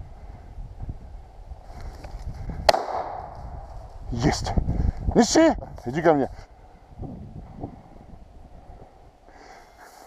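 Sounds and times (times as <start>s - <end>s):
shotgun shot: 2.7s - 3.3s
low rustling noise: 9.7s - 10.0s.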